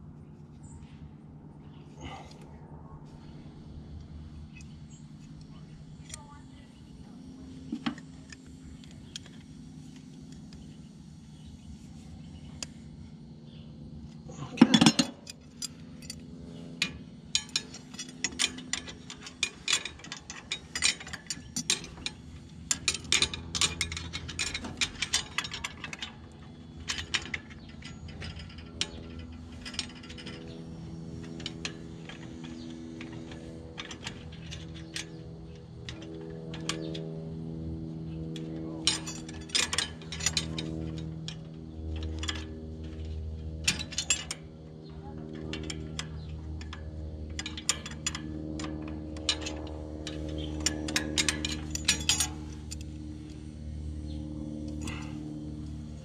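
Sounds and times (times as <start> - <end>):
steady low hum: 0.0 - 56.0
metal tool clinking on pipes: 14.3 - 16.2, 16.8 - 37.0, 38.4 - 44.5, 45.3 - 53.4, 54.7 - 55.4.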